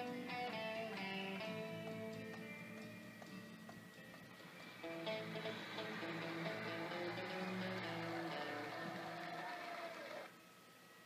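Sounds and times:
guitar notes ringing: 0.0 - 9.4.

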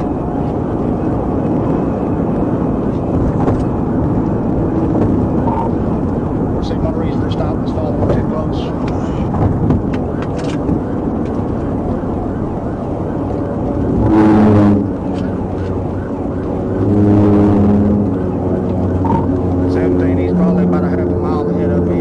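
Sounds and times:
road and wind noise in car: 0.0 - 22.0
loud horn blasts: 13.8 - 15.2, 16.6 - 20.7.

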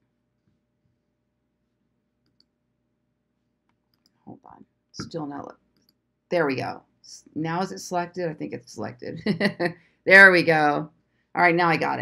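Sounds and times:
computer mouse clicks: 2.2 - 2.5
woman speaking: 4.3 - 5.5, 6.3 - 12.0.

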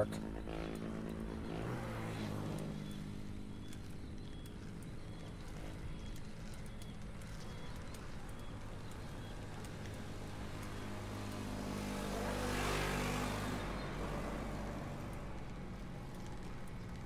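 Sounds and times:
vehicle engine droning: 0.0 - 17.0.

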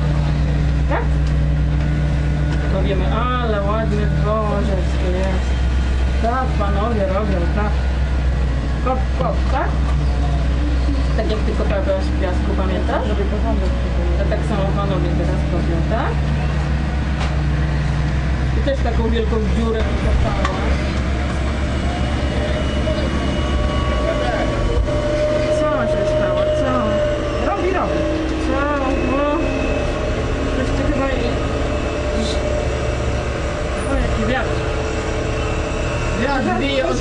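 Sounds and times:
diesel engine running: 0.0 - 37.0.

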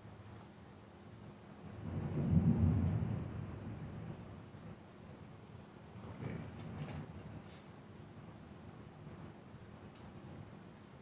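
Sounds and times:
low rumble: 1.7 - 4.4
faint clicks: 9.9 - 10.1.

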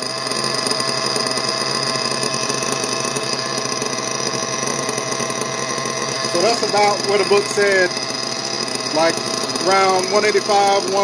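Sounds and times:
model car nitro engine idling: 0.0 - 11.0.

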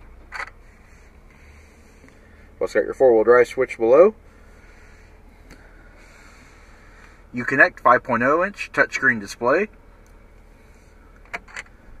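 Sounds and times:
low hum inside truck cab: 0.0 - 12.0.

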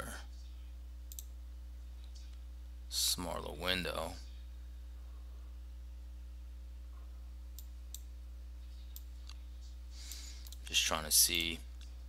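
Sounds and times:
low electrical hum: 0.0 - 12.0
faint computer mouse clicks: 1.1 - 1.3.

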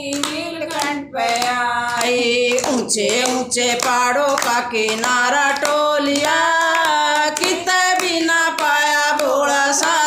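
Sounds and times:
women singing devotional song: 0.0 - 10.0
hands clapping in time: 0.1 - 10.0.

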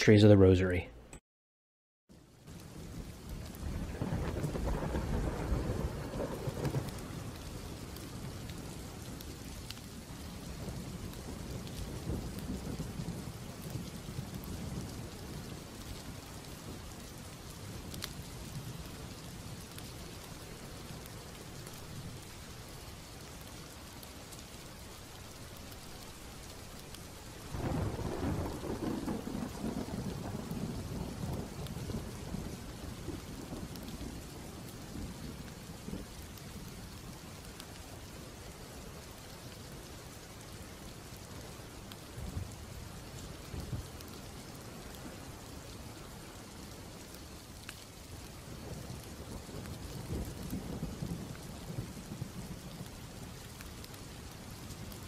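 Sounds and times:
steady rain: 0.0 - 0.8, 2.1 - 55.0
thunder rumbling: 2.5 - 37.9, 47.8 - 55.0.

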